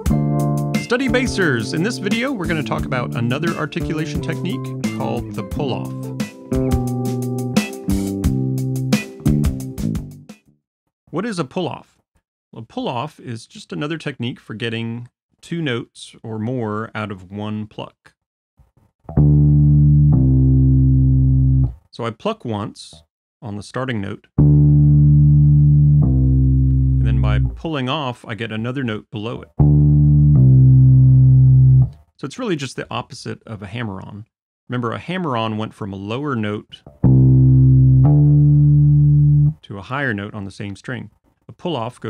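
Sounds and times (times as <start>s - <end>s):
electric bass guitar note: 0.0s - 7.0s, 19.1s - 21.7s, 24.4s - 27.6s, 29.6s - 31.9s, 36.9s - 39.6s.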